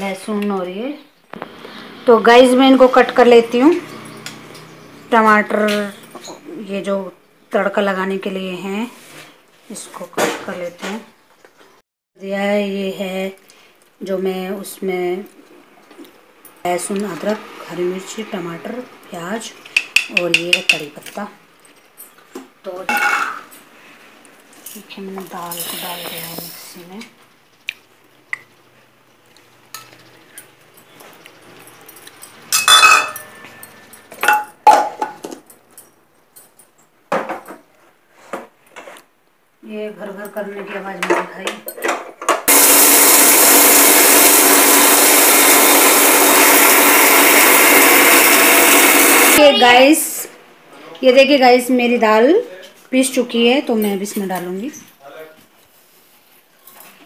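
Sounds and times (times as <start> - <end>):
steel jar and bowl clinking: 29.7 - 34.6.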